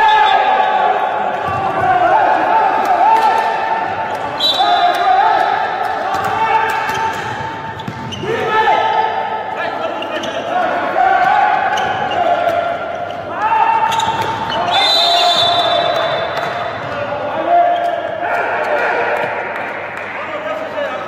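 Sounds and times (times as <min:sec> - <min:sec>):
players calling out: 0:00.0 - 0:20.8
ball bouncing on court: 0:06.1 - 0:08.3, 0:13.9 - 0:14.8, 0:15.6 - 0:17.1.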